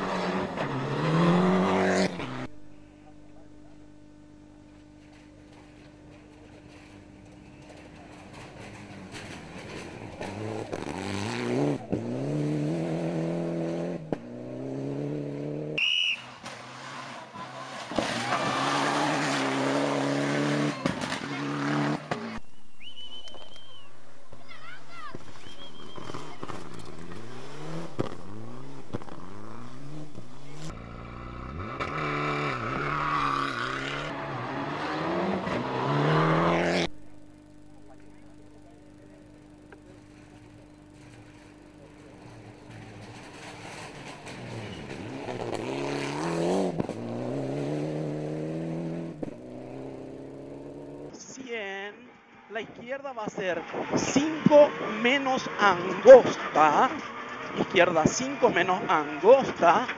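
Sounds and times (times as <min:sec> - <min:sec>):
rally car engines revving: 0:00.0 - 0:23.8, 0:25.1 - 0:51.2, 0:53.6 - 0:59.9.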